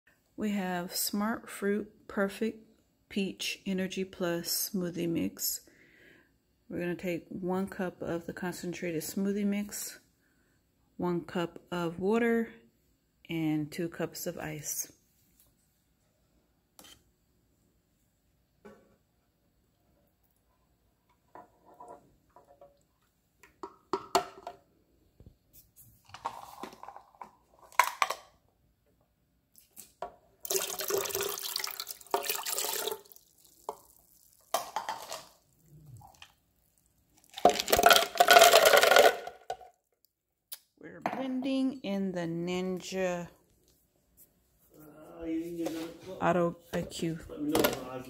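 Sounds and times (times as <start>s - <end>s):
cups and jug clinking: 30.4s - 33.9s, 34.5s - 35.3s, 37.3s - 39.3s
ice cubes tumbling into jar: 30.4s - 35.4s, 37.2s - 39.6s
water pouring into plastic jar: 30.4s - 36.3s, 37.1s - 39.2s.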